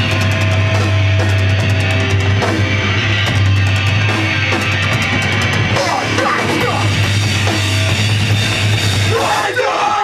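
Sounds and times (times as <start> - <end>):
punk band playing live: 0.0 - 10.0
shouted vocals: 9.0 - 10.0.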